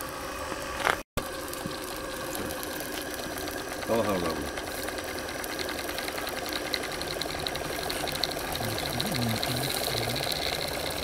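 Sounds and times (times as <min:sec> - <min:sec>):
model steam engine running: 0:01.3 - 0:11.0.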